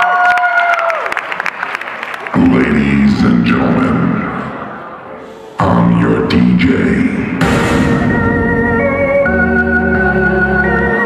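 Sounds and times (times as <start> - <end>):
audience applauding and cheering: 0.0 - 2.6.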